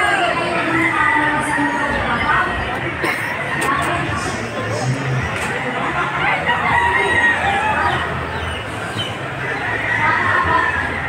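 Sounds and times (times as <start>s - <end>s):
steady background din: 0.0s - 11.0s
rooster crowing: 6.5s - 8.1s.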